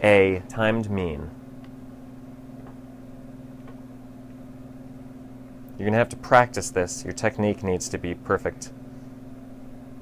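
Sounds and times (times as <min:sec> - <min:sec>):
exhaust fan humming: 0:00.0 - 0:10.0.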